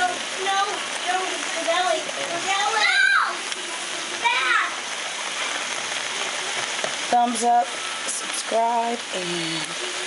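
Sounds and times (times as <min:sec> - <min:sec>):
stew sizzling in a pot: 0:00.0 - 0:10.0.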